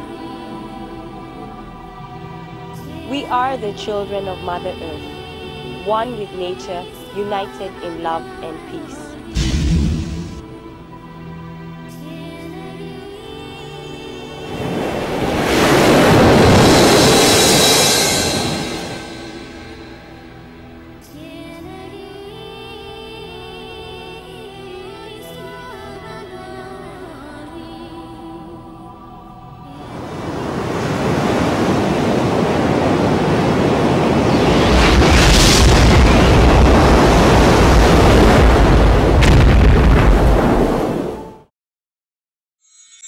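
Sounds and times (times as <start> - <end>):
explosion-like boom: 9.4 - 10.4, 34.3 - 41.1
whoosh and rumble effect: 9.4 - 10.5, 33.2 - 40.9
ocean surf rushing: 14.3 - 20.6, 29.7 - 41.4.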